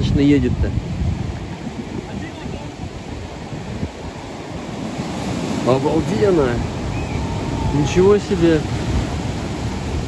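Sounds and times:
waves breaking on rocky shore: 0.0s - 10.0s
wind buffeting microphone: 0.0s - 10.0s.

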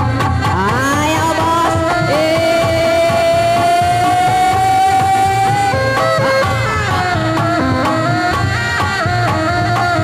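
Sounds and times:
steady drumming: 0.1s - 10.0s
held melodic wind note: 7.4s - 8.7s.

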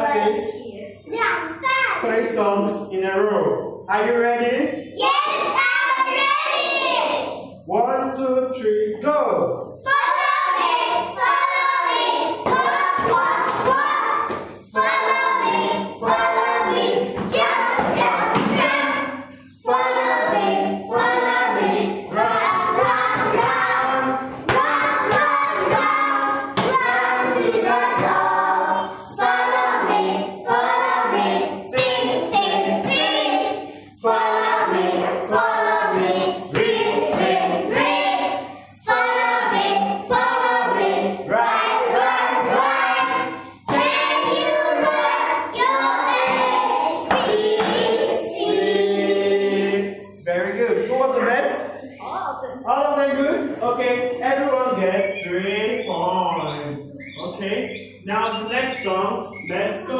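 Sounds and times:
children singing in chorus: 5.0s - 7.5s, 9.8s - 50.0s.

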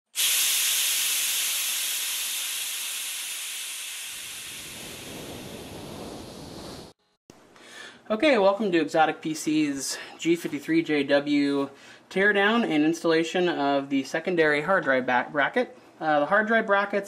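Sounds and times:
loud steam-like hiss: 0.1s - 7.0s.

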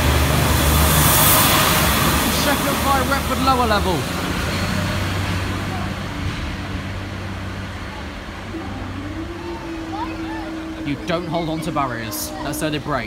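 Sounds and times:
train diesel engine drone: 0.0s - 13.0s
people talking: 2.3s - 4.1s, 4.8s - 6.8s, 7.8s - 13.0s.

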